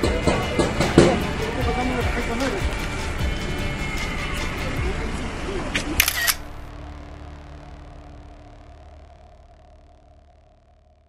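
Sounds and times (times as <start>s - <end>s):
people's voices: 0.0s - 6.6s
camera shutter clicks: 5.8s - 6.6s.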